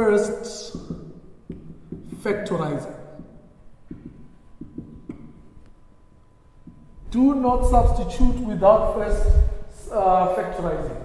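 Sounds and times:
faint steady hum: 0:00.0 - 0:11.0
marker knocking on whiteboard: 0:00.7 - 0:05.6, 0:06.6 - 0:06.9.

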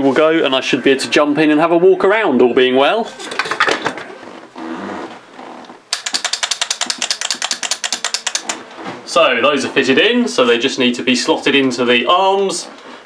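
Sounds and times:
handling parts on workbench: 0:03.1 - 0:04.2
ratcheting screwdriver clicks: 0:05.9 - 0:08.6.

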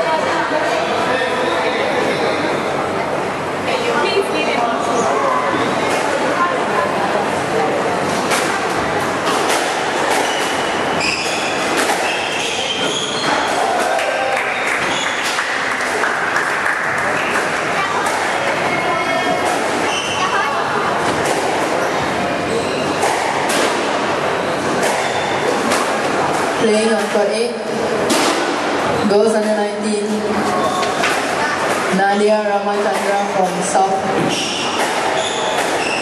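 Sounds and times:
racket striking ball: 0:08.2 - 0:12.7, 0:23.0 - 0:24.0, 0:24.8 - 0:27.2, 0:34.6 - 0:36.0
shoes squeaking on court: 0:10.1 - 0:13.5, 0:14.7 - 0:15.4, 0:19.3 - 0:20.5, 0:24.9 - 0:25.6, 0:34.2 - 0:36.0.

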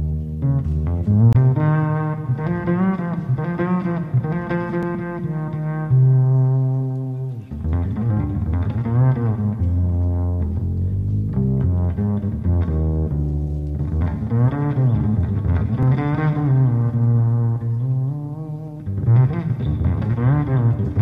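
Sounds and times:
low bowed strings music: 0:00.0 - 0:21.0.

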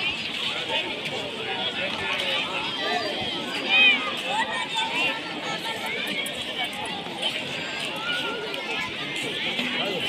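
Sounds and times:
crowd chatter outdoors: 0:00.0 - 0:10.0.

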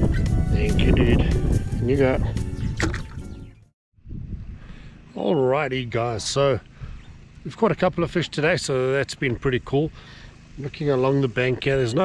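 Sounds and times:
wind rumbling on microphone: 0:00.0 - 0:04.9.

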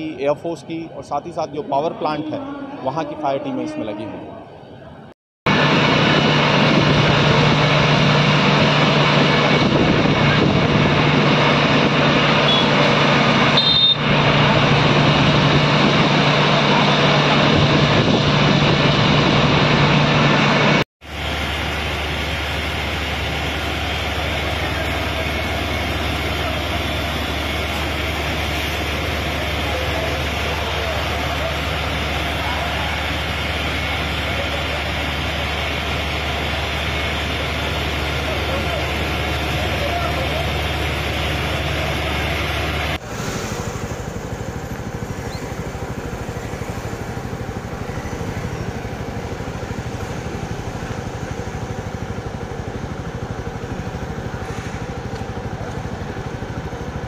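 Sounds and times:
fire engine pump noise: 0:00.0 - 0:57.0
diesel engine idling: 0:05.5 - 0:57.0.

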